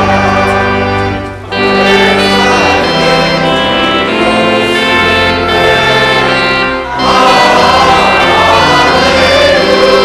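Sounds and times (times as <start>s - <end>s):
choir and congregation singing hymn: 0.0s - 10.0s
pipe organ: 0.0s - 10.0s.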